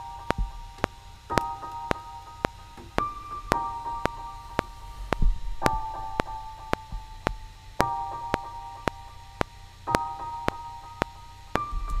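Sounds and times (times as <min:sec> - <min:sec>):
metronome clicks: 0:00.0 - 0:12.0
piano held chords: 0:00.0 - 0:12.0.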